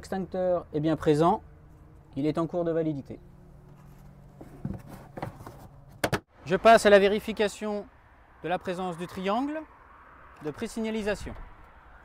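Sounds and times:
faint knocks and rustles: 0:03.6 - 0:06.2.

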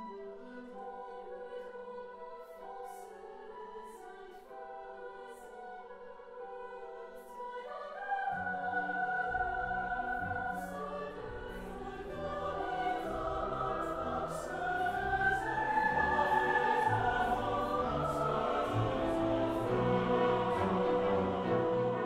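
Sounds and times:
choir singing: 0:00.0 - 0:22.0
symphony orchestra: 0:00.0 - 0:22.0.

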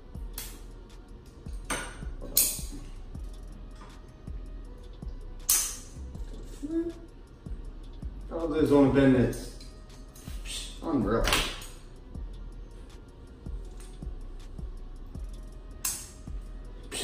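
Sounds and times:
faint background music: 0:00.0 - 0:17.0.

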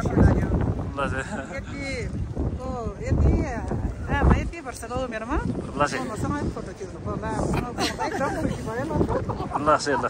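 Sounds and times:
voices talking: 0:00.0 - 0:10.0
wind buffeting microphone: 0:00.0 - 0:10.0.

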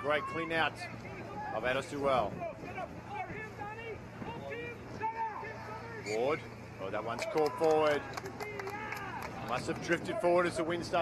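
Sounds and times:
people shouting and talking: 0:00.0 - 0:11.0.

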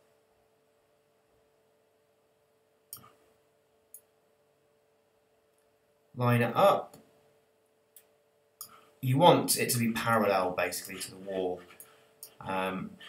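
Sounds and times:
faint steady hum: 0:00.0 - 0:13.0
computer mouse clicks: 0:02.9 - 0:03.2.

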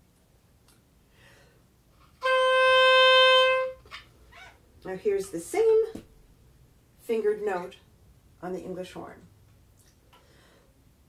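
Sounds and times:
oboe holding a note: 0:02.2 - 0:03.9.

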